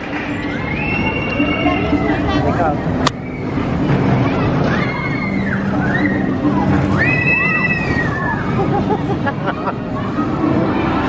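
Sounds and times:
roller coaster train on track: 0:00.0 - 0:11.0.

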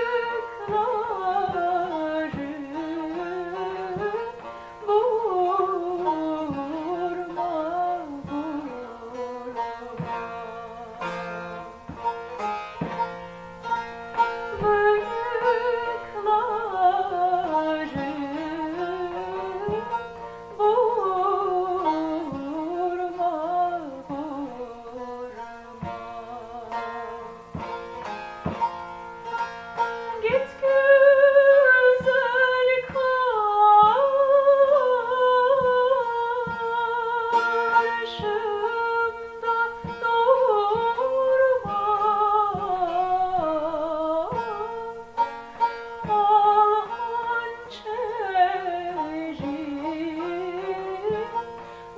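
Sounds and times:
plucked long-necked lute: 0:00.0 - 0:51.9
woman singing folk song: 0:00.0 - 0:51.9.

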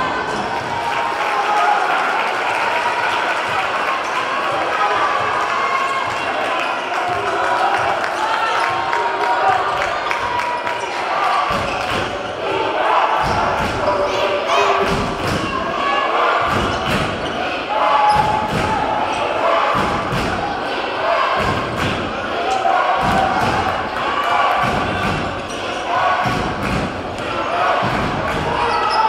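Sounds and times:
chatter of spectators: 0:00.0 - 0:29.0.

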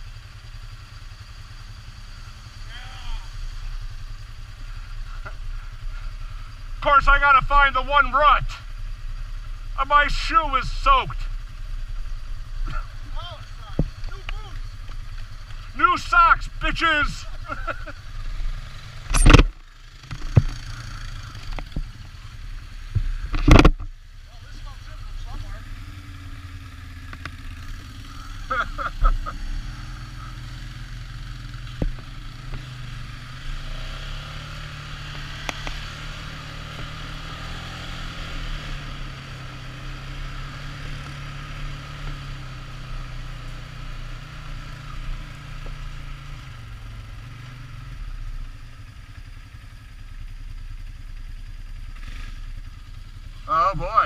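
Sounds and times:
atv engine running: 0:00.0 - 0:54.0.

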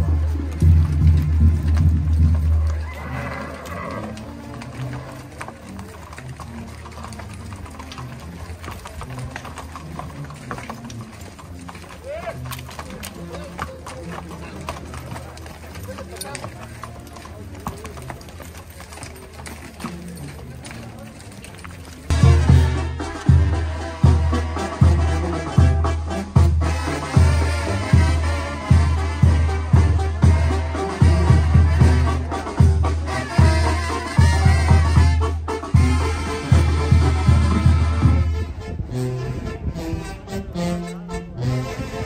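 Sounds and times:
hooves clip-clopping on pavement: 0:00.0 - 0:42.0
scattered voices: 0:03.9 - 0:23.7.

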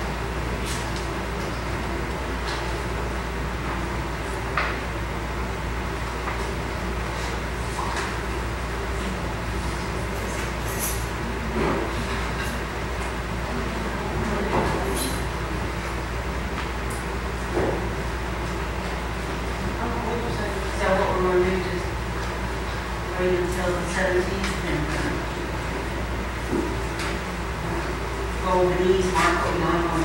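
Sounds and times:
room tone hum and hiss: 0:00.0 - 0:30.0.

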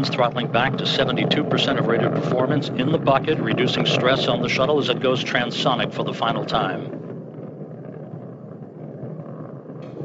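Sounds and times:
rocket motors rumbling: 0:00.0 - 0:10.0.

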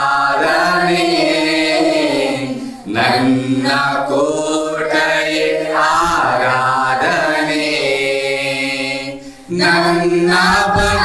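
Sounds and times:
group singing a worship song: 0:00.0 - 0:11.0.

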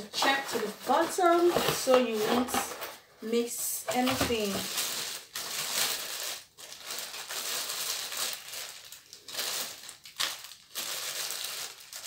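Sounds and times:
crinkly packaging wrap rustling: 0:00.0 - 0:12.0.

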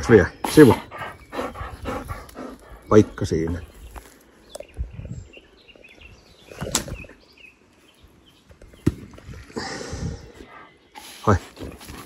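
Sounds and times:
dog panting: 0:00.7 - 0:03.6.

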